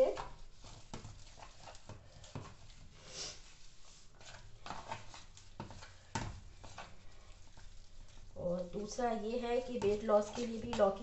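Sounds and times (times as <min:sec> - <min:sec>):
hand squelching wet mixture: 0:00.0 - 0:11.0.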